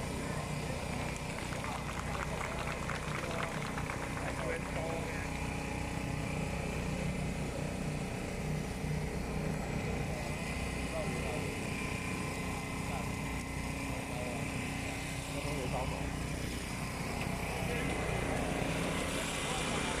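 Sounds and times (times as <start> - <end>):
many voices talking: 0.0 - 5.4, 17.2 - 20.0
low engine hum: 0.0 - 20.0.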